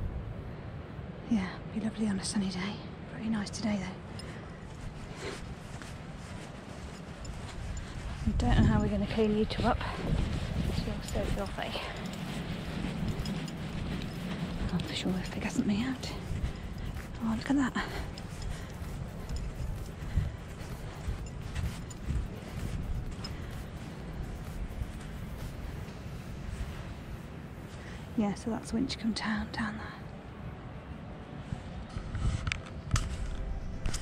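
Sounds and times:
wind buffeting microphone: 0.0s - 34.0s
walking across wet grass: 3.5s - 34.0s.

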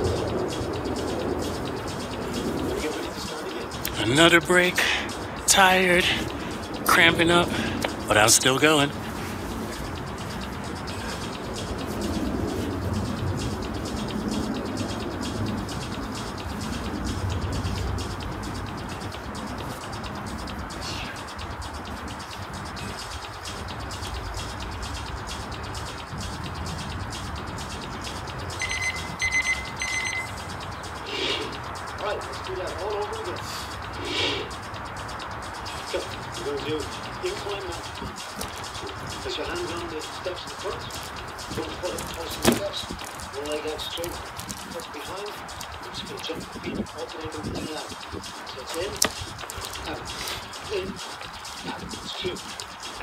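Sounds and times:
outdoor background noise: 0.0s - 53.0s
small bird chirping: 0.0s - 53.0s.

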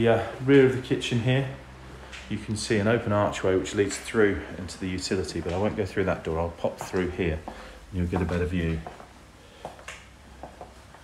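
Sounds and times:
footsteps on wooden flooring: 5.2s - 11.0s.

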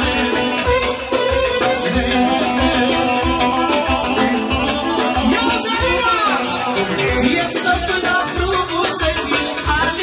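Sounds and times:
band playing over steady beat: 0.0s - 10.0s.

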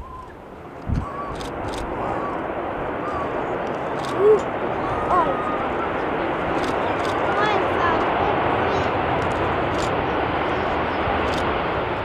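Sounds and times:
jet engines roaring: 0.0s - 12.0s.

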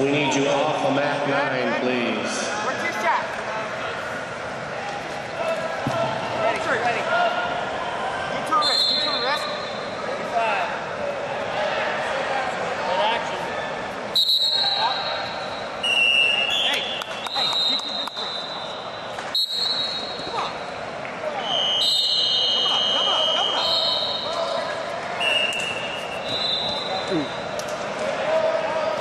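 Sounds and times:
crowd chatter: 0.0s - 29.0s
referee whistles blowing: 8.6s - 9.8s, 14.1s - 20.3s, 21.4s - 24.4s, 25.2s - 27.4s.

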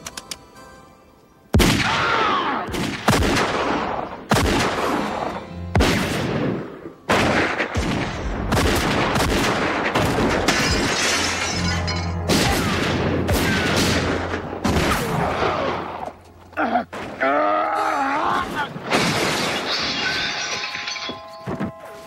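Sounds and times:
film music score: 0.0s - 18.9s
echoing gunshots: 1.5s - 10.9s, 12.3s - 16.0s
glass shattering: 10.4s - 12.5s, 18.9s - 21.8s.

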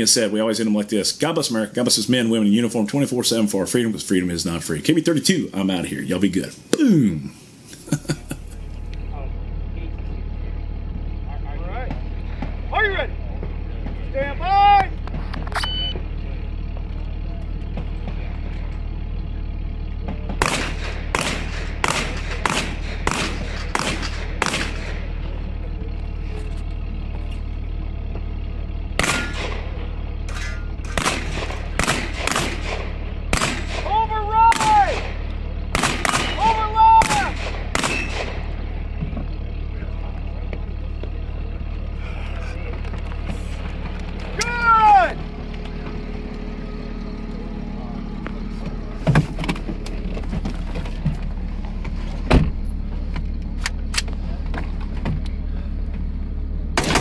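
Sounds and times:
steady low hum: 0.0s - 57.0s
short beep: 15.6s - 16.0s
rapid gunshots: 20.4s - 25.2s, 30.9s - 33.9s, 34.5s - 38.6s, 56.8s - 57.0s.

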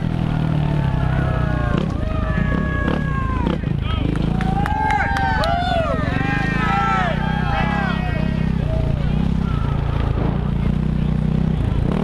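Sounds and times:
fans shouting and cheering: 0.0s - 11.3s
motocross bike at low revs: 0.0s - 12.0s.

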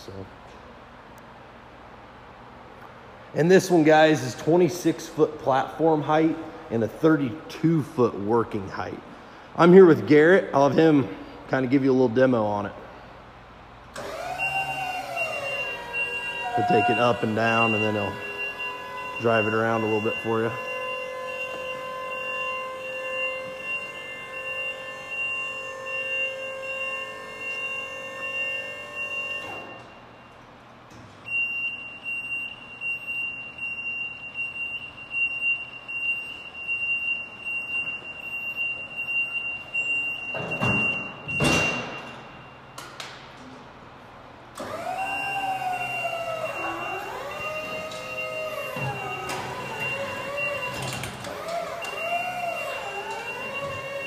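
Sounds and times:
high alarm tone: 14.1s - 30.3s, 45.0s - 51.0s, 51.8s - 54.0s.

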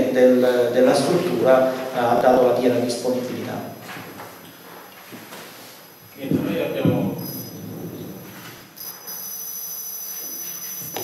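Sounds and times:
microphone handling noise: 6.2s - 8.7s
high-pitched ringing tone: 7.1s - 11.0s.

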